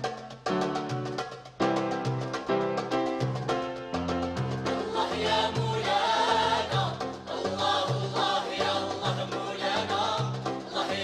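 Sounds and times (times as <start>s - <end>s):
goblet drum: 4.3s - 11.0s
mixed choir singing: 4.7s - 11.0s.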